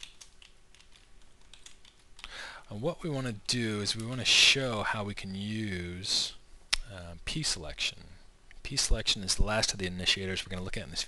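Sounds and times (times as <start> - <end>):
computer keyboard clicks: 0.0 - 2.3.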